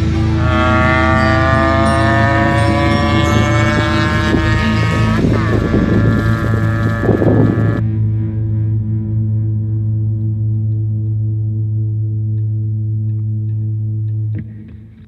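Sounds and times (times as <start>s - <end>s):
motorbike engine revving: 0.0s - 7.8s
background music: 0.0s - 14.9s.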